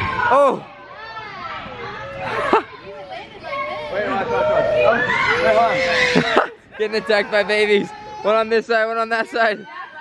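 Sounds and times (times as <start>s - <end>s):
child squealing: 4.6s - 6.5s.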